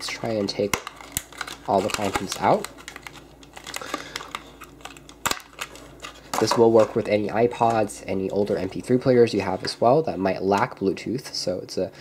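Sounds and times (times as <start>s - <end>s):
packaging crinkling and rustling: 0.0s - 10.7s.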